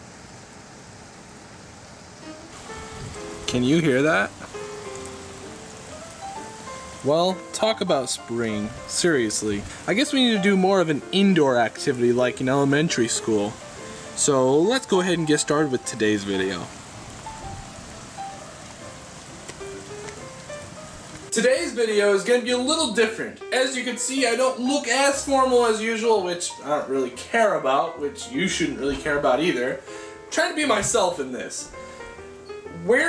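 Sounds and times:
steady rain falling: 0.0 - 33.0
soft background music: 2.2 - 33.0.

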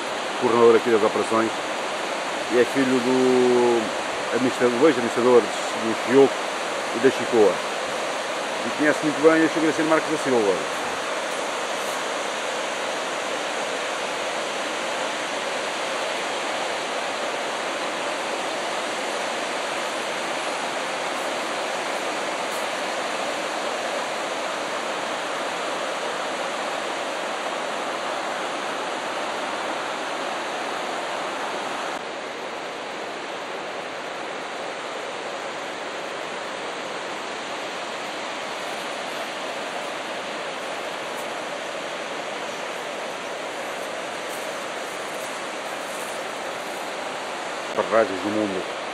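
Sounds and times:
water rushing from dam gates: 0.0 - 48.9.

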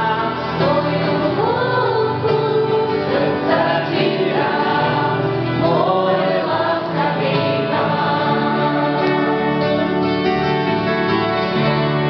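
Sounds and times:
gospel group singing: 0.0 - 10.1
strummed acoustic guitars: 0.0 - 12.0.

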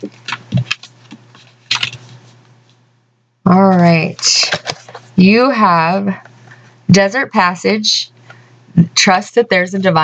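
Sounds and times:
cards snapping and rustling: 0.1 - 2.1.

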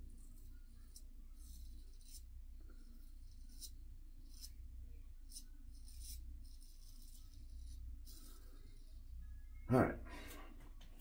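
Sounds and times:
razor scraping stubble: 0.2 - 4.6, 5.3 - 9.1.

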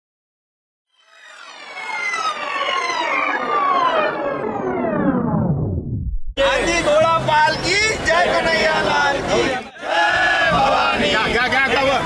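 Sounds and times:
synth tones sliding down: 0.9 - 6.5.

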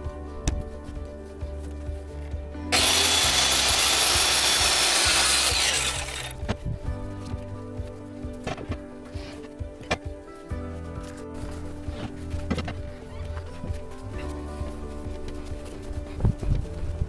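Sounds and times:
circular saw cutting wood: 2.7 - 6.4.

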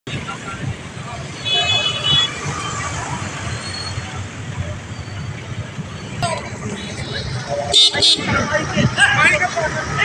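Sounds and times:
voices: 0.1 - 10.0
vehicle horn: 7.7 - 8.3.

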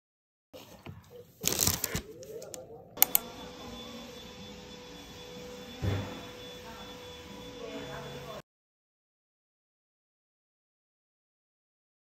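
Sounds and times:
rustling and crunching handling noise: 0.6 - 2.6
sharp clicks: 2.4 - 3.2.

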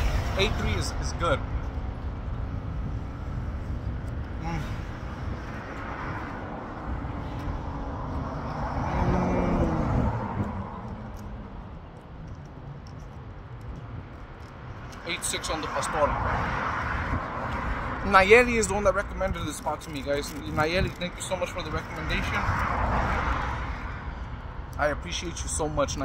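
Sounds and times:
vehicle passing close: 0.0 - 13.1
roadside traffic noise: 0.0 - 26.0.

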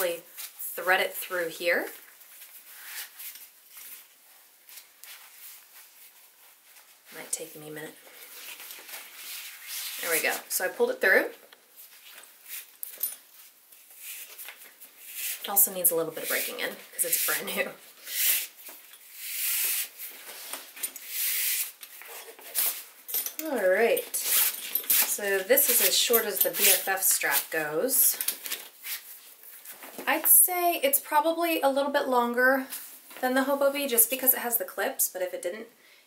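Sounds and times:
bag strap rustling and scraping: 2.0 - 10.7, 11.8 - 30.3.

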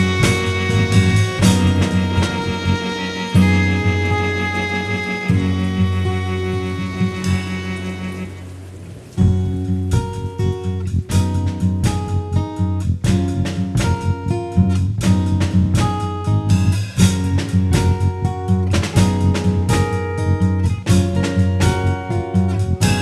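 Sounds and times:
acoustic guitar strummed: 0.0 - 23.0
low bass line: 0.0 - 23.0.

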